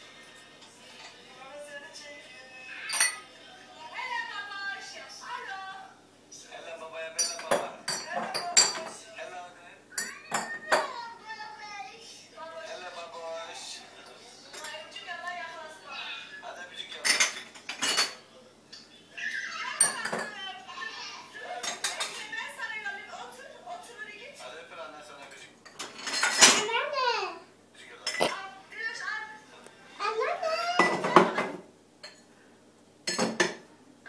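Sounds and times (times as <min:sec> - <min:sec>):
crockery and glassware clinking: 0:02.8 - 0:03.3, 0:07.1 - 0:09.0, 0:10.0 - 0:11.0, 0:14.0 - 0:14.8, 0:16.8 - 0:18.9, 0:19.8 - 0:20.4, 0:21.6 - 0:22.3, 0:25.2 - 0:26.7, 0:28.0 - 0:28.4, 0:30.8 - 0:32.3, 0:33.0 - 0:33.6
dishes and cutlery clattering: 0:02.8 - 0:03.3, 0:07.1 - 0:09.0, 0:10.0 - 0:11.0, 0:14.0 - 0:14.9, 0:16.8 - 0:18.9, 0:19.6 - 0:20.4, 0:21.5 - 0:22.4, 0:25.2 - 0:26.8, 0:30.8 - 0:32.3, 0:33.0 - 0:33.7.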